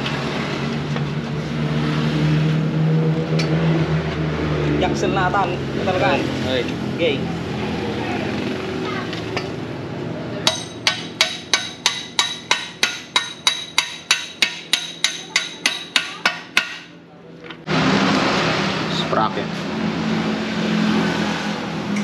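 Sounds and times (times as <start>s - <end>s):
hammer striking metal: 10.4s - 17.0s.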